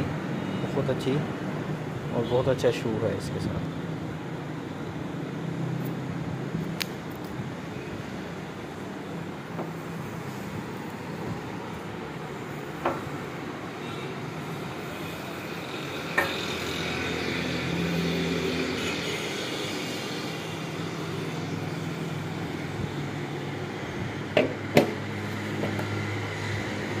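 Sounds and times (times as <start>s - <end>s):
knocks and clicks of iron and box: 24.4s - 25.0s.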